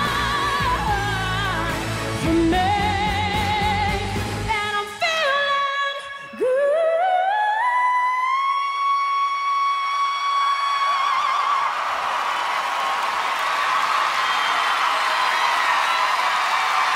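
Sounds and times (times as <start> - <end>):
crowd cheering and applause: 9.6 - 16.9.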